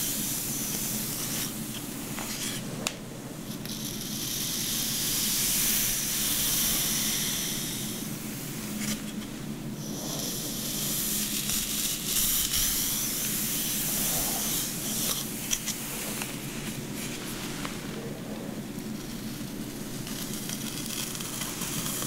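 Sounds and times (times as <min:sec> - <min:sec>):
fingers rustling through hair: 0:00.0 - 0:22.0.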